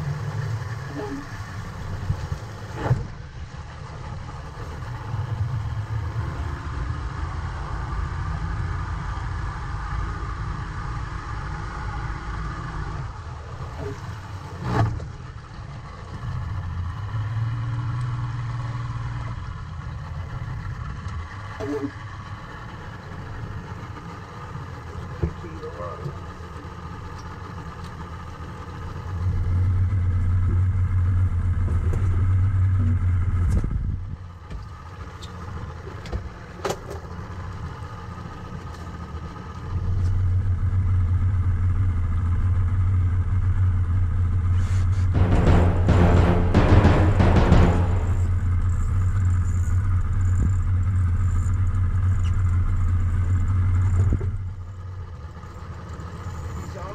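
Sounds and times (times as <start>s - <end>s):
low rumble: 28.8s - 34.4s, 39.7s - 55.0s
sharp knocks: 45.2s - 48.6s.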